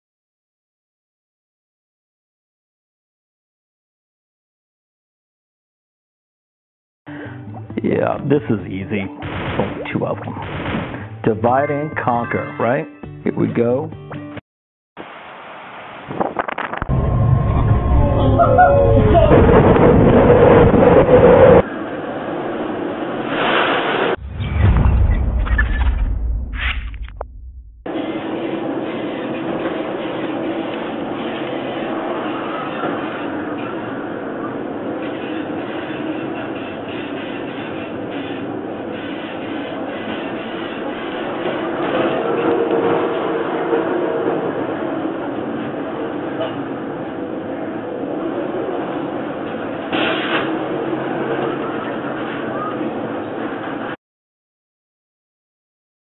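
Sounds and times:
wind at sea: 0:15.0 - 0:24.1.

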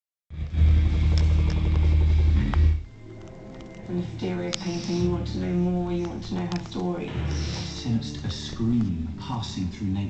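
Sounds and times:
loud deep rumble: 0:00.3 - 0:02.8.

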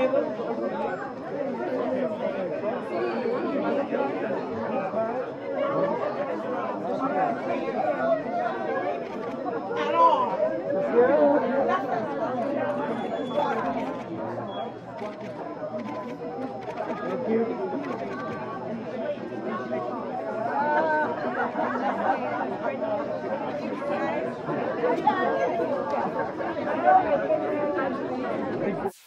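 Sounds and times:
chatter of many people: 0:00.0 - 0:29.0.

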